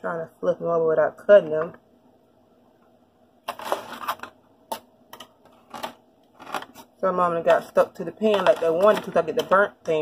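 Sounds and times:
knife scraping foil pan: 0:03.5 - 0:04.3.

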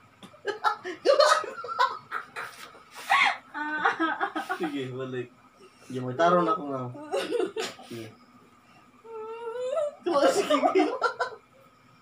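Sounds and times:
person whimpering whine: 0:09.0 - 0:10.0.

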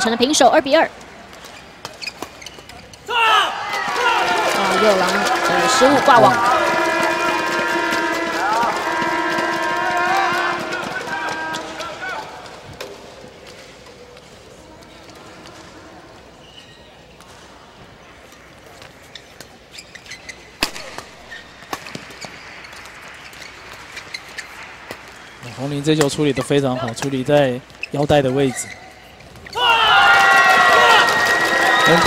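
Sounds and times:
spectators shouting and cheering: 0:03.0 - 0:12.8, 0:29.5 - 0:32.0.

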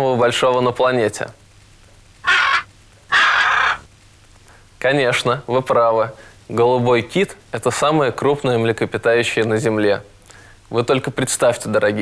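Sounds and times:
macaw squawking: 0:02.2 - 0:03.9.

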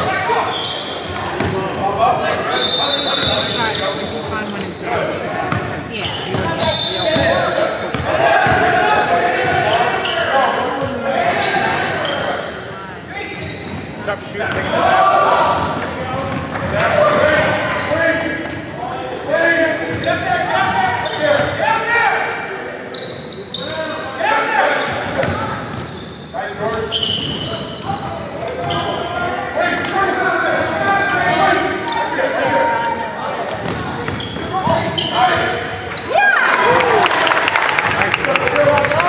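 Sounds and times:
shoe squeaks: 0:00.0 - 0:08.1, 0:08.8 - 0:15.0, 0:16.1 - 0:29.2, 0:30.0 - 0:36.2.

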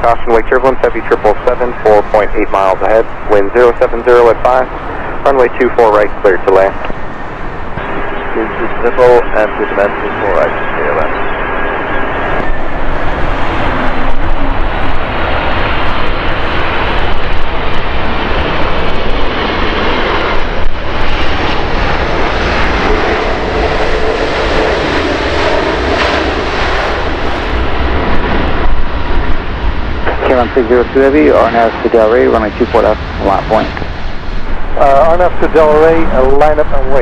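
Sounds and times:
airliner jet engines roaring: 0:00.0 - 0:37.0
airliner rolling on runway: 0:00.0 - 0:37.0.

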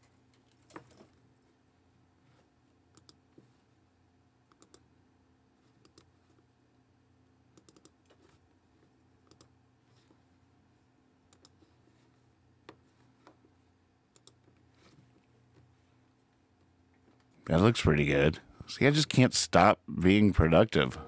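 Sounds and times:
low steady hum: 0:00.0 - 0:21.0
faint sparse clicking: 0:02.9 - 0:03.2, 0:04.5 - 0:04.9, 0:09.2 - 0:09.6, 0:14.1 - 0:14.6.

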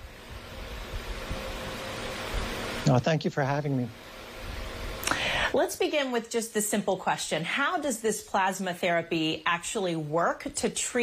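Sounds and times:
microphone hiss: 0:00.0 - 0:09.4
thin steady hum: 0:00.0 - 0:11.0.

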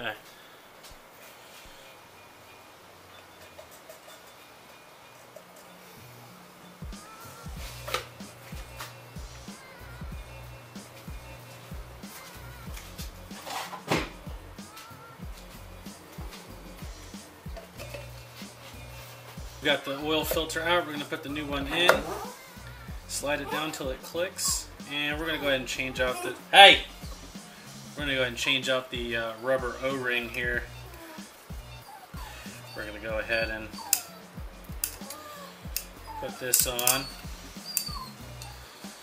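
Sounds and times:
background music with bass line: 0:06.0 - 0:39.0.

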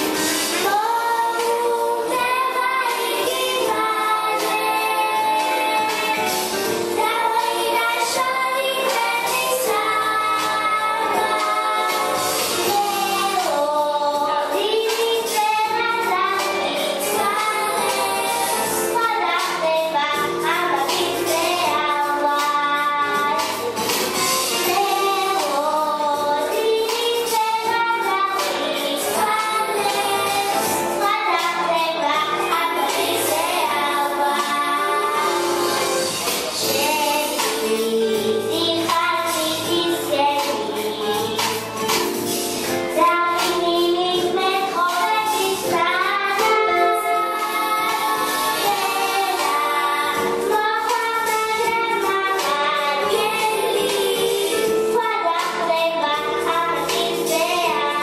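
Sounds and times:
backing music with steady beat: 0:00.0 - 0:58.0
live instrumental accompaniment: 0:00.0 - 0:58.0
girl singing: 0:00.6 - 0:23.5, 0:24.5 - 0:35.8, 0:36.6 - 0:41.9, 0:42.9 - 0:58.0.

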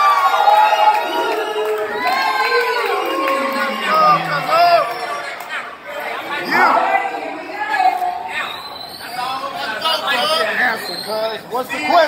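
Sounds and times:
people talking at once: 0:02.5 - 0:12.0.

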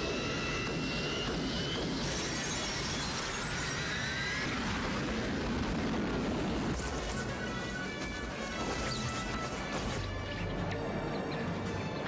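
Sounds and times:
jet engine noise: 0:00.0 - 0:12.0
film music: 0:06.9 - 0:12.0.

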